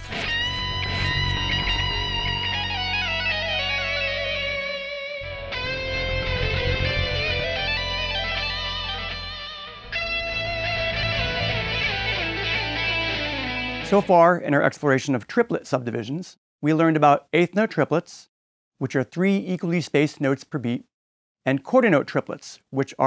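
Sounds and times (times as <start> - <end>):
bending guitar notes: 0.0 - 14.1
electric guitar chords: 0.0 - 14.1.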